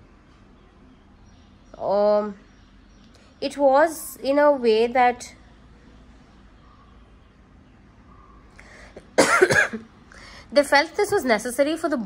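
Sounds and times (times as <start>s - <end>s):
woman coughing: 9.1s - 9.9s.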